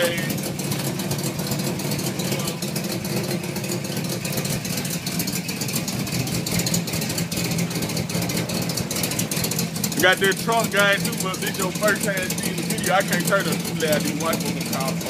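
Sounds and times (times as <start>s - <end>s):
car engine idling: 0.0s - 15.0s.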